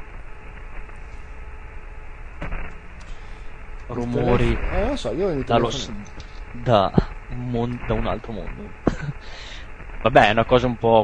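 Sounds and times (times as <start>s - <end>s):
white-noise hiss: 0.0s - 11.0s.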